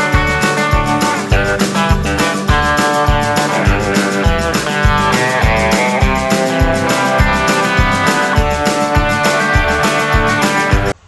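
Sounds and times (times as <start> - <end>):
guitar-led rock music: 0.0 - 11.0.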